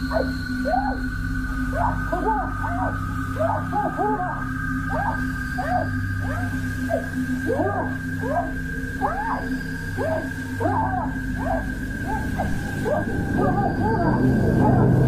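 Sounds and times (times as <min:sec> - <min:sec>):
steady droning tones: 0:00.0 - 0:15.0.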